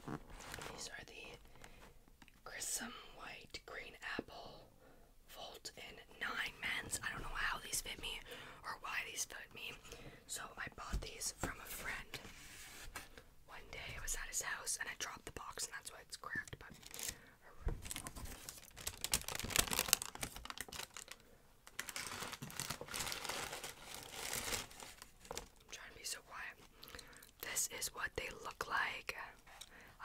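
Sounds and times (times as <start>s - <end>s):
close whispering: 13.5s - 16.7s, 25.7s - 26.7s, 27.4s - 29.5s.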